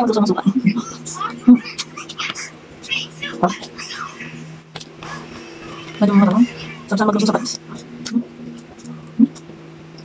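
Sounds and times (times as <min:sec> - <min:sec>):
eating sounds: 0:00.0 - 0:10.0
steady low hum: 0:00.0 - 0:10.0.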